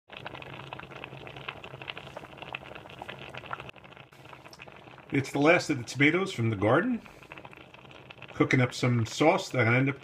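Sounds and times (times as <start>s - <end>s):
tomato sauce bubbling in a pot: 0.1s - 10.0s.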